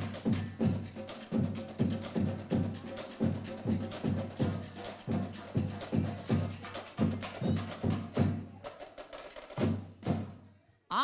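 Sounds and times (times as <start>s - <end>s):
drumline playing a steady beat: 0.0s - 10.4s.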